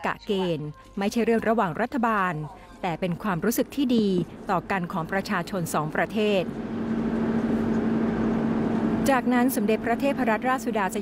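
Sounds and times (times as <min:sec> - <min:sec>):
engine and road noise droning: 0:03.1 - 0:11.0.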